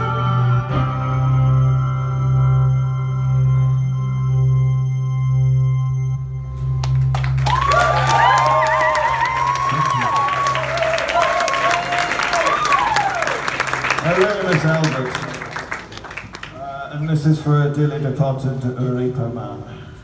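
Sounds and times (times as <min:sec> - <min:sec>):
audience applause: 0:06.8 - 0:16.8
cheering voices: 0:07.4 - 0:15.3.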